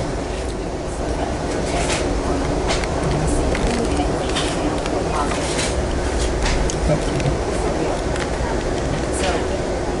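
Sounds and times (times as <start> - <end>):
train car rumbling: 0.0 - 10.0.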